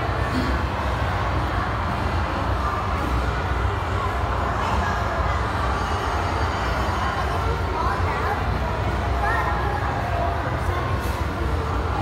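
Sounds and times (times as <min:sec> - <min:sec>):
indoor venue din: 0:00.0 - 0:12.0.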